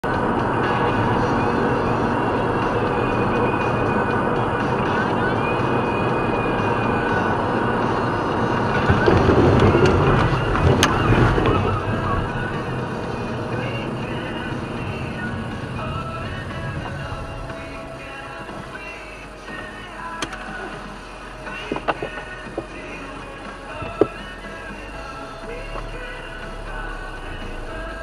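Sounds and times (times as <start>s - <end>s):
faint music: 0.0s - 28.0s
road and tyre noise in car: 0.0s - 28.0s.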